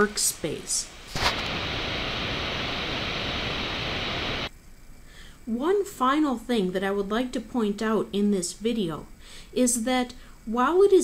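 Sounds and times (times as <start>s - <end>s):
steady static hiss: 0.0s - 11.0s.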